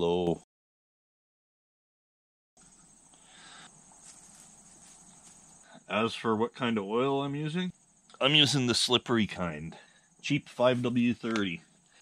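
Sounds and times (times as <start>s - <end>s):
crickets chirping: 2.6s - 12.0s
soft rustling: 3.8s - 5.6s.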